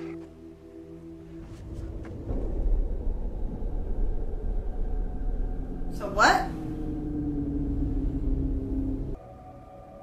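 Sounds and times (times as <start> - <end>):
low steady soundtrack rumble: 1.4 - 9.3.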